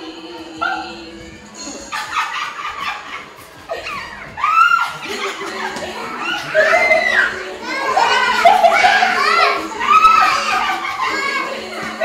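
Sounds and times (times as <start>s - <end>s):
children calling out and shouting: 3.7s - 5.0s, 6.0s - 12.0s.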